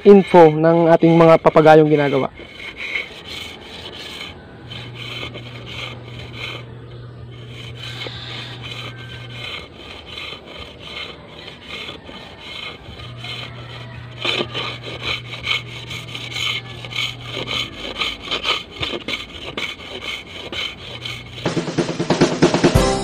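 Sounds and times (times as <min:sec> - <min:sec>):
knife scraping bamboo: 0:00.0 - 0:21.6.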